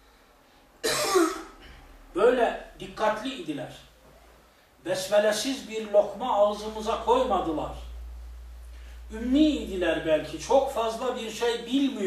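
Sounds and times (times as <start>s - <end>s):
man coughing: 0.8s - 1.8s.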